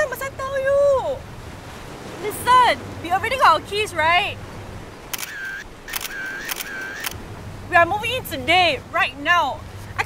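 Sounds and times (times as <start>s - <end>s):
camera shutter clicks: 5.1s - 7.2s
short high beep: 5.2s - 7.2s.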